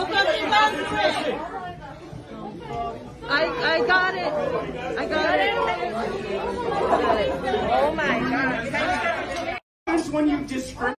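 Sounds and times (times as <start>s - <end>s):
voices talking over one another: 0.0s - 10.5s.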